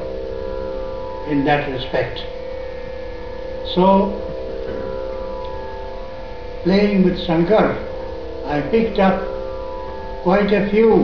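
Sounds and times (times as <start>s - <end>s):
drone of held tones: 0.0s - 11.0s.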